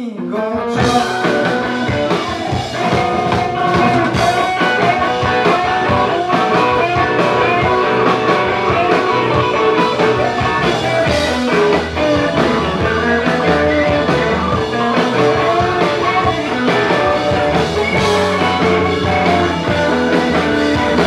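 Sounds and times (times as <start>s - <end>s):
drums: 0.0s - 21.0s
electric guitars: 0.0s - 21.0s
upright bass: 0.7s - 21.0s.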